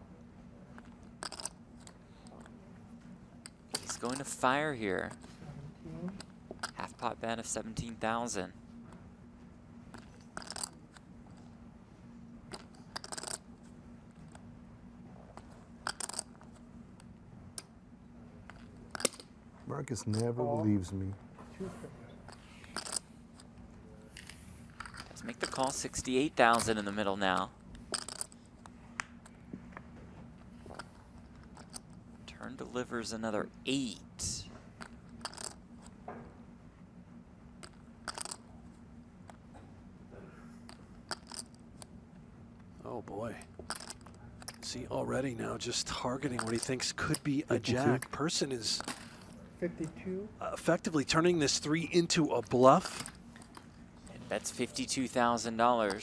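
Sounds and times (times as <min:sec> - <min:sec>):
faint low hum: 0:00.0 - 0:56.0
poker chips clattering: 0:01.2 - 0:01.6, 0:03.8 - 0:04.5, 0:10.0 - 0:10.8, 0:12.5 - 0:13.4, 0:15.8 - 0:16.5, 0:22.3 - 0:23.1, 0:24.2 - 0:28.4, 0:34.8 - 0:35.6, 0:37.6 - 0:38.4, 0:40.6 - 0:41.6, 0:43.7 - 0:44.7, 0:45.8 - 0:49.2, 0:51.5 - 0:53.7.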